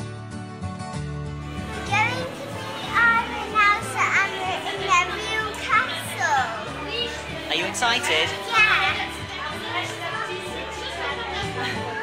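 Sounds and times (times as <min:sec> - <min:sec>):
background music with low notes: 0:00.0 - 0:12.0.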